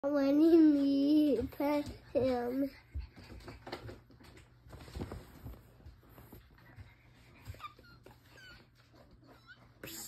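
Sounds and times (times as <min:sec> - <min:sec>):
puppy whining: 0:07.4 - 0:10.0.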